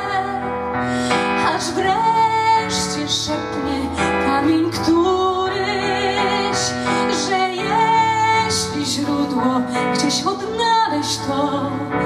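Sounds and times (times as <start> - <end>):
woman singing with vibrato: 1.2 - 12.0.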